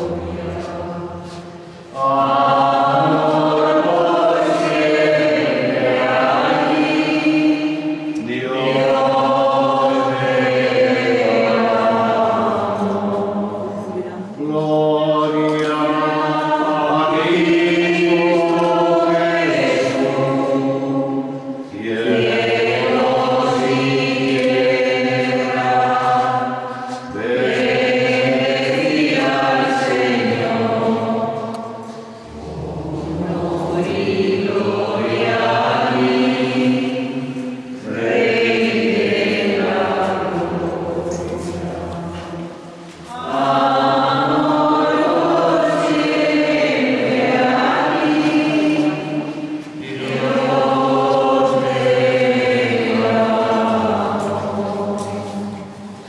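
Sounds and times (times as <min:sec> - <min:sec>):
choir singing slow chant: 0:00.0 - 0:56.0.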